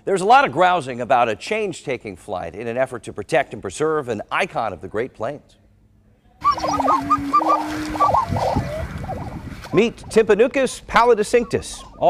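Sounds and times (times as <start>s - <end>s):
prairie chickens calling: 6.4s - 12.0s.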